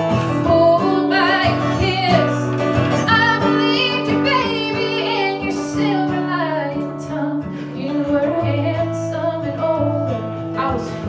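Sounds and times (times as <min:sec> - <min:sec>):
strummed acoustic guitar: 0:00.0 - 0:11.0
woman singing slow song: 0:00.1 - 0:11.0.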